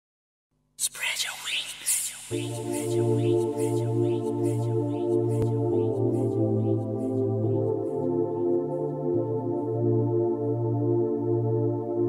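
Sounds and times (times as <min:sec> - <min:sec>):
whispered breathy vocals: 0:00.8 - 0:05.5
faint low synth drone: 0:02.3 - 0:12.0.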